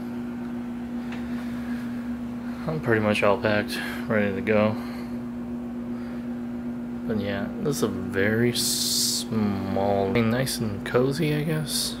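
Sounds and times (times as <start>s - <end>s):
air conditioner humming: 0.0s - 12.0s.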